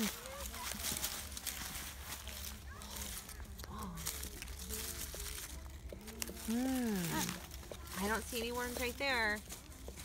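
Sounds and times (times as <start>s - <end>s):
hands digging through leaves and soil: 0.0s - 10.0s.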